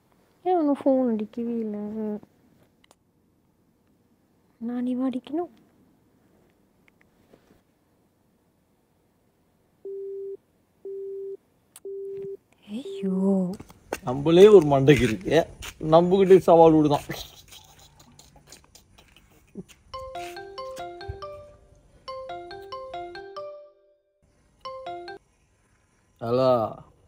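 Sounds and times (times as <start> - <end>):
telephone busy tone: 9.9 - 13.1
marimba-style phone ringtone: 20.0 - 24.0, 24.7 - 25.2.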